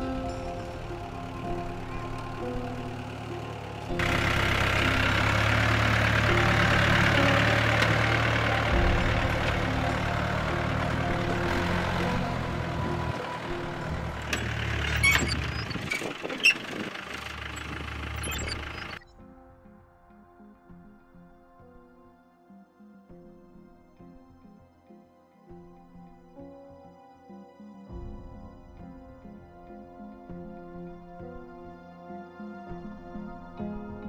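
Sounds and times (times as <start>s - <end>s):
jeep engine running: 0.0s - 19.0s.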